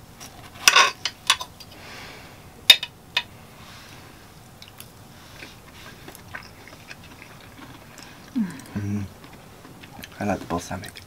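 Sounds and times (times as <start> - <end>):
soft chewing: 4.4 - 11.0.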